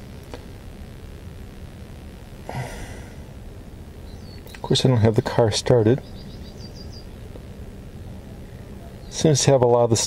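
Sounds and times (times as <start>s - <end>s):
short breathy noise: 2.4s - 3.4s
faint click: 4.3s - 4.6s.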